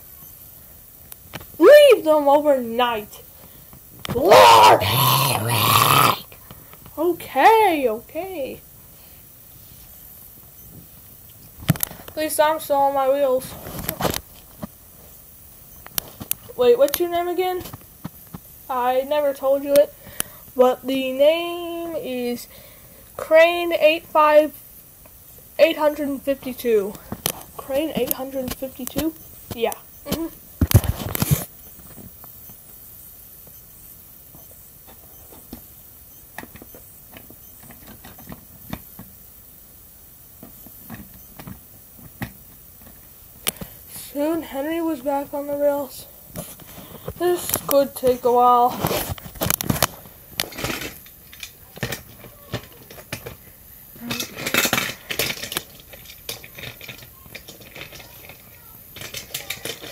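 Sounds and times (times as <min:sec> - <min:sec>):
plastic toy trains clicking: 0:54.0 - 0:59.9.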